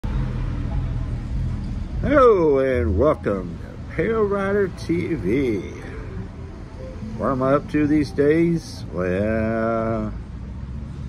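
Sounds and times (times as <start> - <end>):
motor vehicle rumble: 0.0 - 11.0
faint hum: 0.6 - 11.0.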